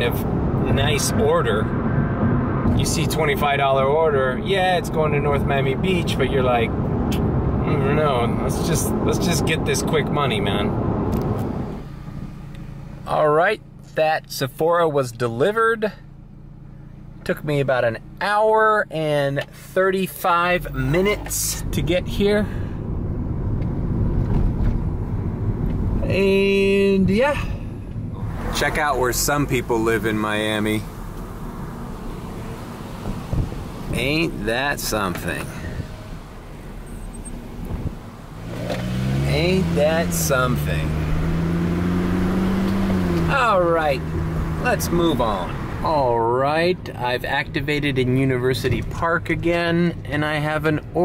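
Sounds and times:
car engine and road noise: 0.0 - 51.0.

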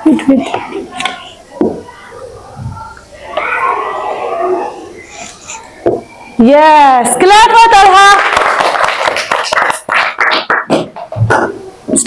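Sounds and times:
children clapping: 7.9 - 11.1.

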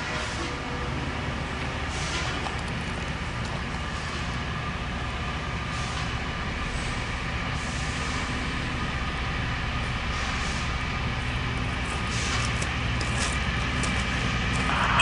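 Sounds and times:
train engine rumble: 0.0 - 15.0
steady whining tones: 8.2 - 15.0.

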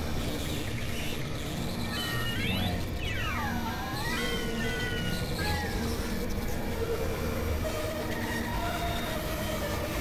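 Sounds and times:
electronic tones gliding downward: 2.0 - 5.8.

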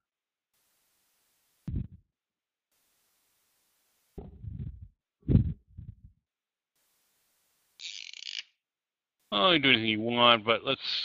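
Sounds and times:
dull low thuds: 1.7 - 2.0, 4.2 - 6.2.

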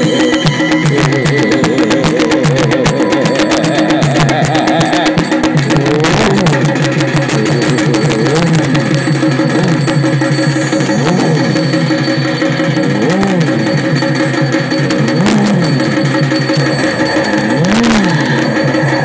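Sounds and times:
loud music over loudspeakers: 0.0 - 19.0
rising and falling tone: 0.0 - 19.0.

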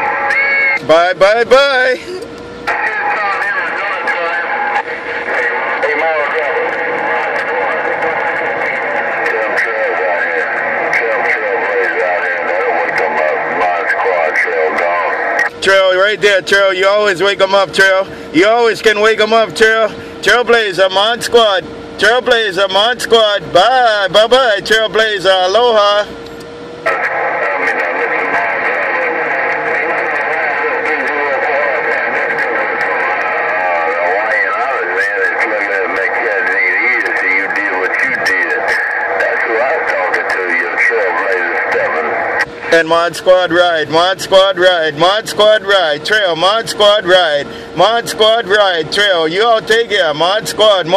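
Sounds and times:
voice over radio: 0.0 - 26.2, 26.8 - 50.9
radio static: 0.0 - 50.9.

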